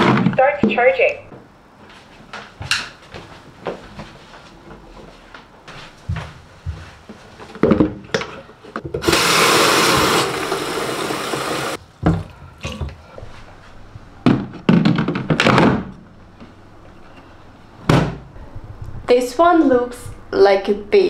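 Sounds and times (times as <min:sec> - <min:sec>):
plastic clunks and knocks: 0:14.2 - 0:15.9.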